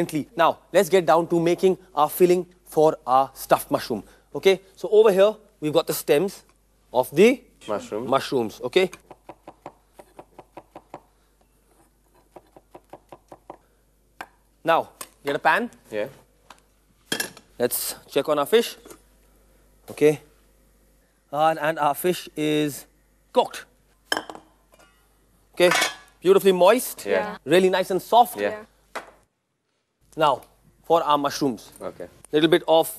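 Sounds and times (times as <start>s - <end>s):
knife chopping on wooden board: 9.0s - 11.1s.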